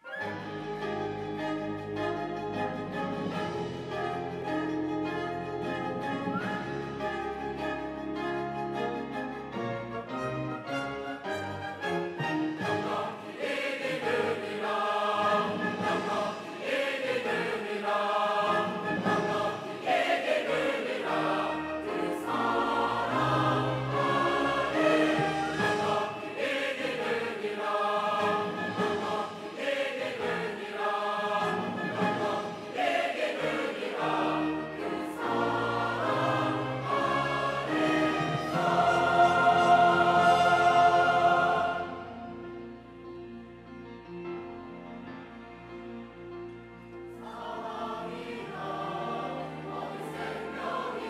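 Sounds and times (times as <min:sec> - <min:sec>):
orchestra playing: 0:00.0 - 0:51.0
mixed choir singing an anthem: 0:12.1 - 0:42.6, 0:47.1 - 0:51.0.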